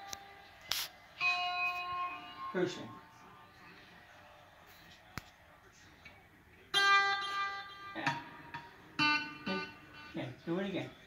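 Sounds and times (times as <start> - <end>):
electric guitar note ringing: 1.2 - 3.0, 6.7 - 10.5.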